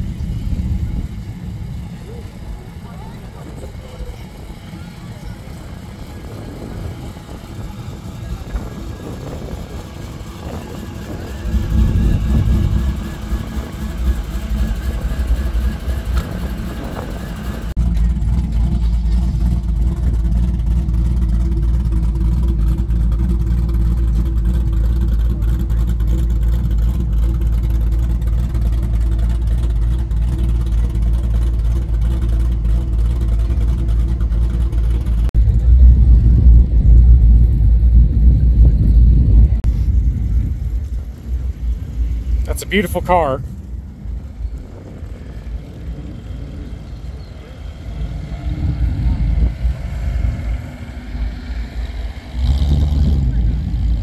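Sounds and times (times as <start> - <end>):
car engine idling: 0.0 - 54.0
outdoor crowd: 0.0 - 54.0.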